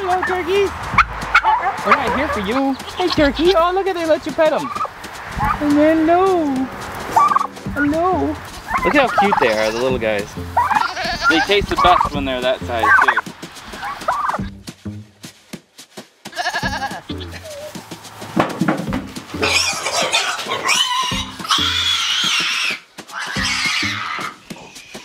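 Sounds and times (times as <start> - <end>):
background music: 0.0 - 25.0
piglet squealing: 8.7 - 12.1, 19.4 - 25.0.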